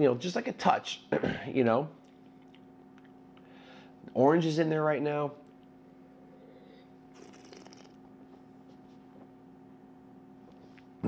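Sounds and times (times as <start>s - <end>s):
steady low hum: 0.0s - 11.0s
sip from a glass: 7.1s - 8.0s.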